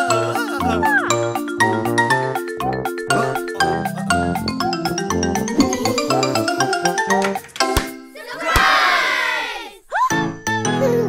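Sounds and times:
cartoon voices cheering: 0:08.2 - 0:10.3.

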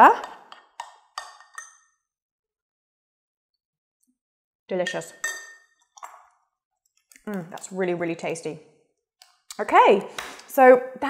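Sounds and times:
spoon clinking against glass bowl: 0:00.2 - 0:02.0, 0:04.7 - 0:06.1.

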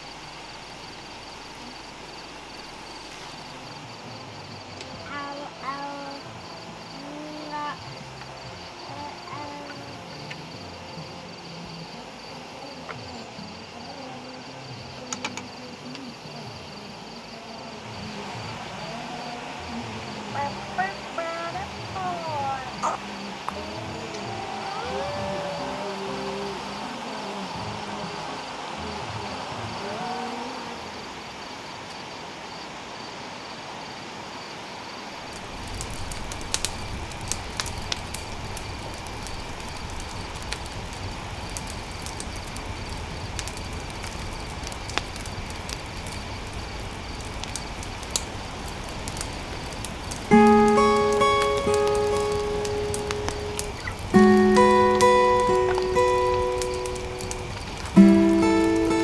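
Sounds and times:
rain drops tapping: 0:00.0 - 0:17.1, 0:17.8 - 0:32.0, 0:35.2 - 0:59.0
rising and falling calls: 0:22.1 - 0:30.8
loud music notes: 0:50.3 - 0:59.0.

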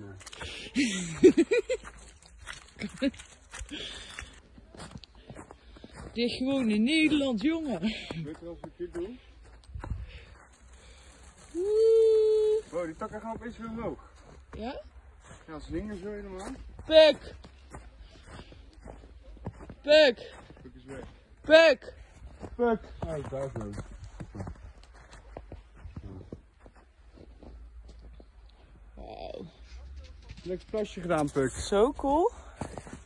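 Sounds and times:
footsteps in snow: 0:00.0 - 0:33.0
person holding an ooh: 0:11.5 - 0:12.6.

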